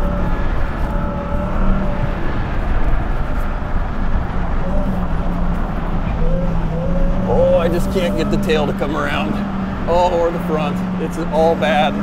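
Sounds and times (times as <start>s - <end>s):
tyre dirt and wind noise: 0.0s - 12.0s.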